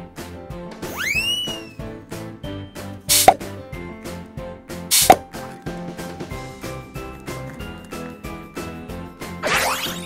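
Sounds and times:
light music with steady beat: 0.0 - 9.4.

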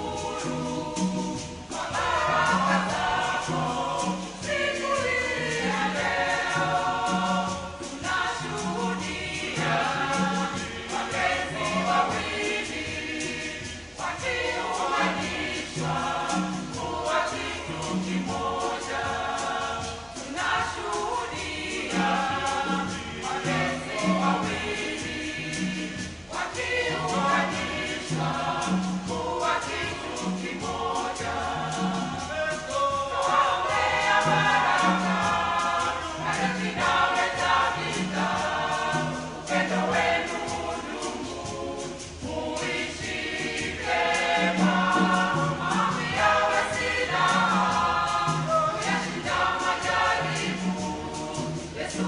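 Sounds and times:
choir singing: 0.0 - 52.0.

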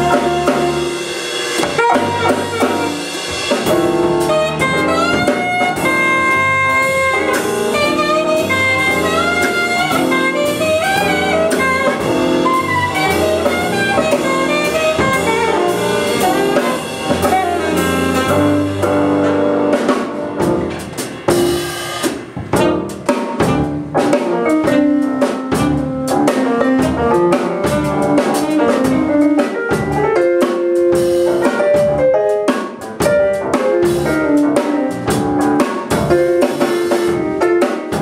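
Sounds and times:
saxophone: 0.0 - 3.2, 4.2 - 19.0
electric bass: 0.0 - 30.2, 32.8 - 37.4
drum kit: 0.0 - 38.0.

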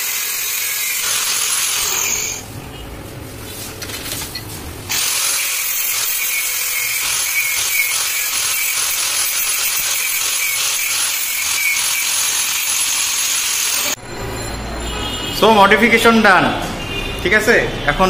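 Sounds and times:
angle grinder grinding metal: 0.0 - 2.4, 4.9 - 14.0.

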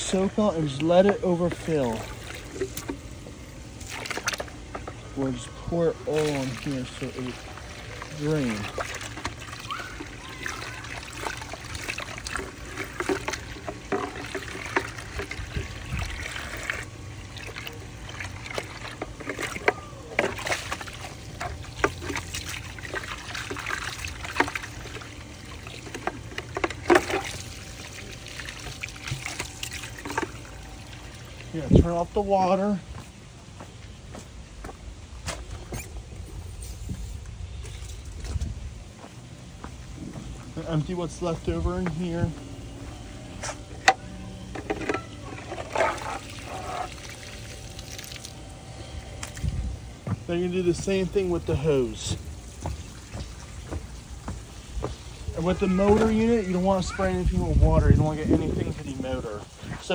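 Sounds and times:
hose water running into plastic drum: 0.0 - 32.8, 43.8 - 59.9
water trickling and splashing: 0.0 - 33.0, 43.9 - 59.9
footsteps on concrete: 32.8 - 35.9, 37.6 - 40.6, 52.1 - 55.1.

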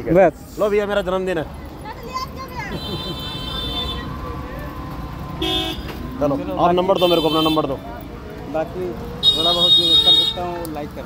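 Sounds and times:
low road rumble: 0.0 - 11.0
vehicle horns honking: 2.7 - 4.1, 5.4 - 6.0, 6.9 - 7.8, 9.2 - 10.6.

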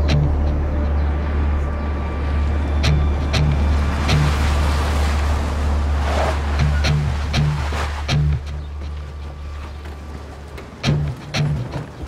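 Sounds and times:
steady deep drone: 0.0 - 8.9
cars driving on dirt road: 0.0 - 12.0.

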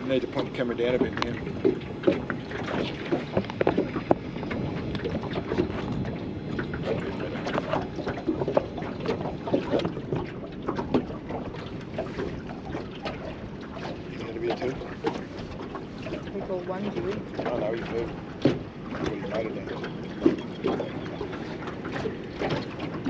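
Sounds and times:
steady water noise: 0.0 - 23.0
waves lapping against boat hull: 0.0 - 23.0
wind on microphone: 0.0 - 23.0
light knocks on hull: 0.8 - 23.0.

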